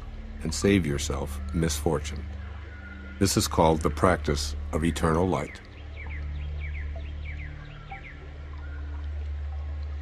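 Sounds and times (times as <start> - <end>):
soft ambient music with drone: 0.0 - 10.0
small bird chirping: 4.6 - 9.7.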